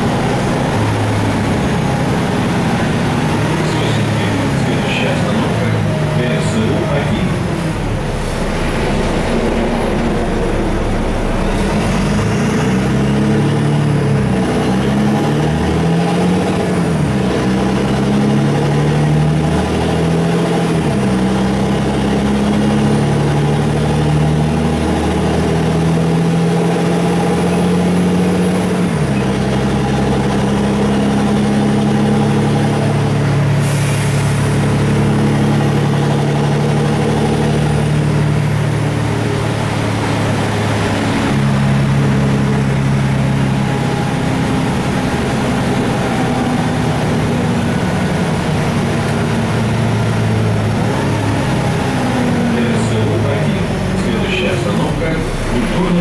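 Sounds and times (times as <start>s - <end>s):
bus diesel engine running: 0.0s - 56.0s.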